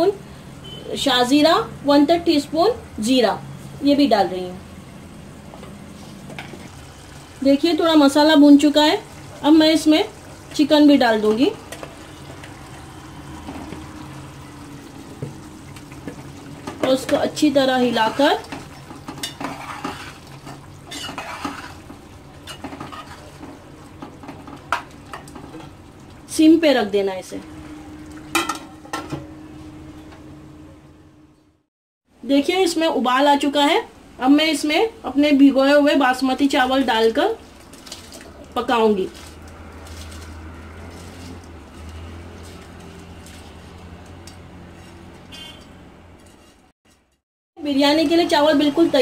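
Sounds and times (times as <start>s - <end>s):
water boiling in a pot: 5.6s - 29.0s, 34.6s - 45.6s
metal spoon stirring in a pot: 17.8s - 25.8s, 39.1s - 47.2s.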